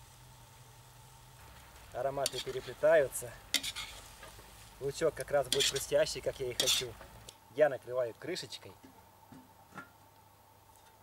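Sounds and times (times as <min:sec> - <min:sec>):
meat and onions sizzling: 0:00.0 - 0:07.4.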